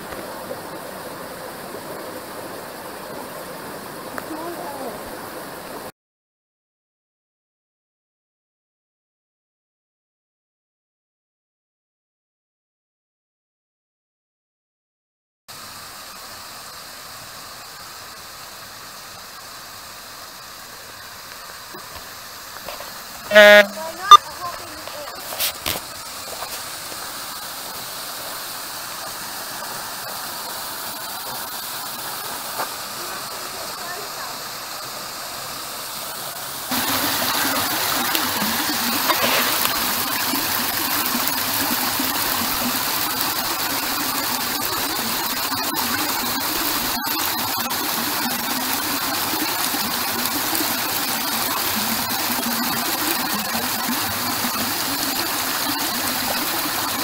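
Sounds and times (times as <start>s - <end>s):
small waterfall rushing: 0.0s - 5.9s, 15.5s - 57.0s
water streaming over rock ledge: 0.0s - 5.9s, 15.5s - 57.0s.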